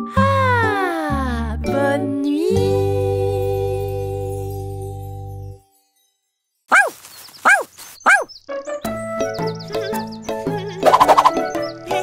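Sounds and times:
cartoon puppy barking: 6.7 - 8.3, 10.7 - 11.4.

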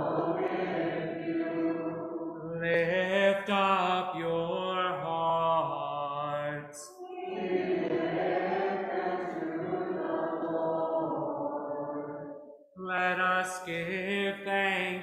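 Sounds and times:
congregation singing: 0.0 - 15.0
man chanting: 2.5 - 7.0, 12.8 - 15.0.

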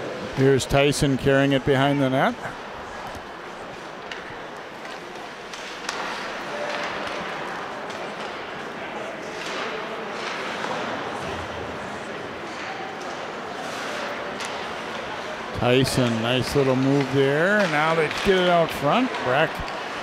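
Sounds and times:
murmur of spectators: 0.0 - 20.0
hockey stick knocking puck: 4.0 - 8.4, 16.0 - 20.0
skate blades scraping ice: 13.5 - 15.1.

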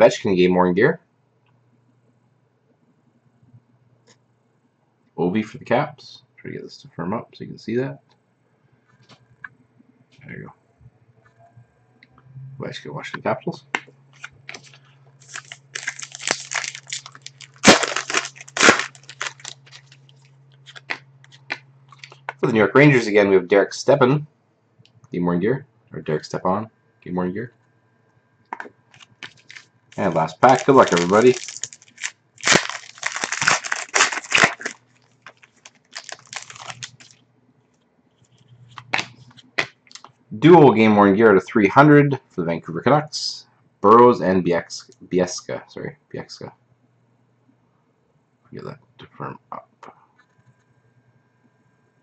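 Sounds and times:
low steady hum: 0.0 - 52.0
cards rustling and sliding: 13.8 - 20.0, 20.6 - 22.4
foil wrapper tearing and crinkling: 14.2 - 20.1, 29.0 - 37.2.

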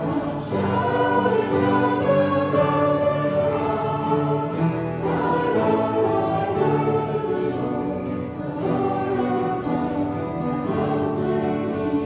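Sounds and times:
acoustic guitar: 0.0 - 12.0
congregation singing: 0.0 - 12.0.

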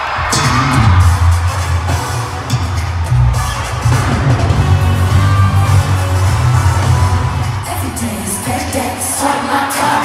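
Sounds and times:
crowd cheering: 0.0 - 10.0
live concert music with heavy bass: 0.0 - 10.0.

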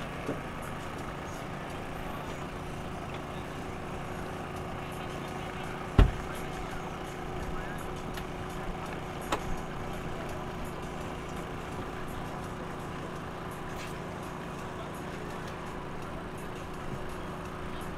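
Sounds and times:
outboard motors idling: 0.0 - 17.9
sharp thump: 6.0 - 6.3.

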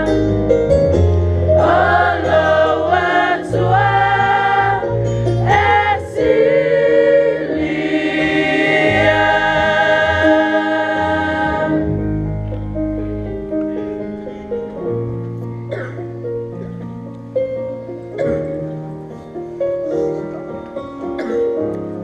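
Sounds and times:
women's choir singing a hymn: 0.0 - 0.4, 1.4 - 12.3
keyboard accompaniment: 0.0 - 22.0.

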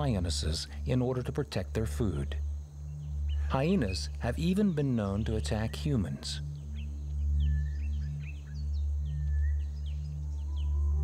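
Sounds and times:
low music drone: 0.0 - 11.0.

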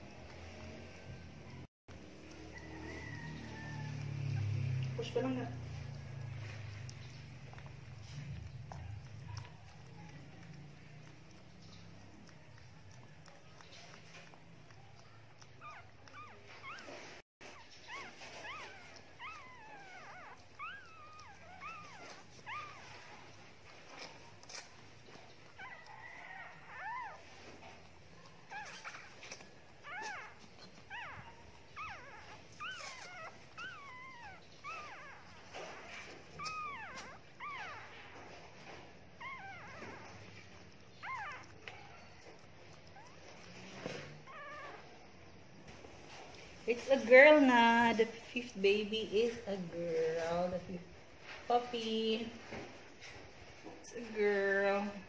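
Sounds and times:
puppies squeaking and crying: 0.0 - 50.6.

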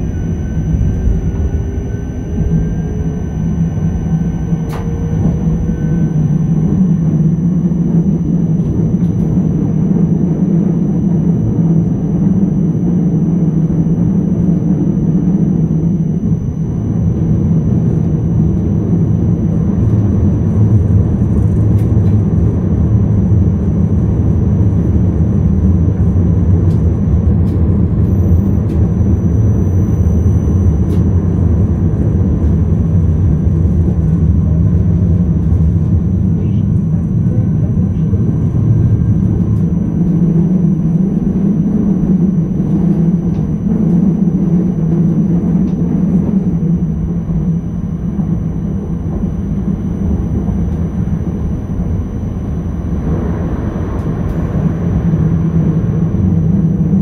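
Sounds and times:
low hum: 0.0 - 57.0
train cab rumble: 0.0 - 57.0.

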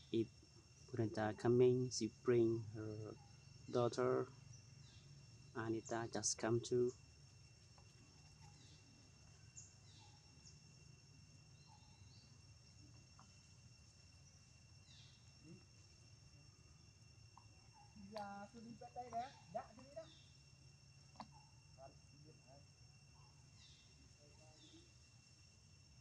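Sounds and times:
high insect drone: 0.0 - 26.0.

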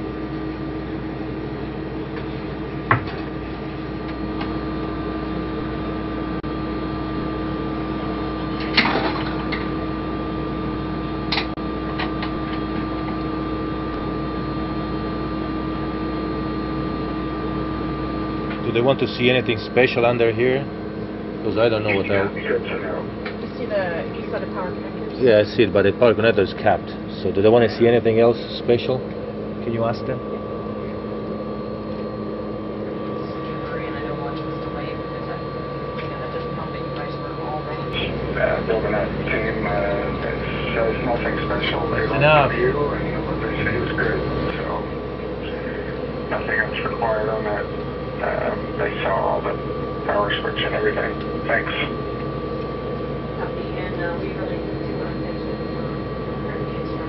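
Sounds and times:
ventilation fans humming: 0.0 - 57.0.

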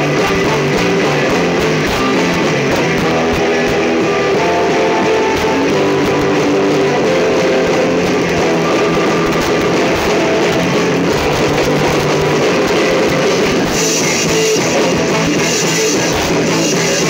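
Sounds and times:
ska band music: 0.0 - 17.0.

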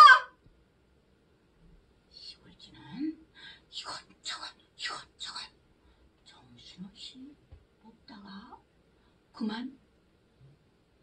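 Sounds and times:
woman whispering: 2.1 - 5.6, 6.2 - 8.6.

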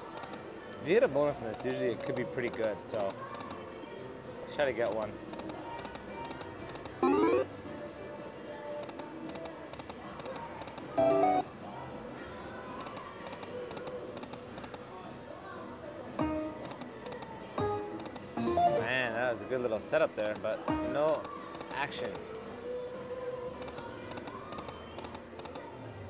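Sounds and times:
casino background din: 0.0 - 26.0
slot machine chimes: 7.0 - 7.5, 11.0 - 11.5, 18.4 - 19.1.

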